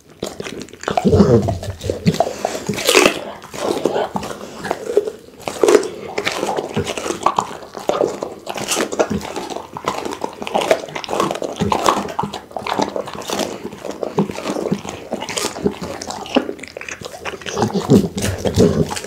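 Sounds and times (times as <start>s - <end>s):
dog chewing and lip smacking: 0.0s - 19.0s.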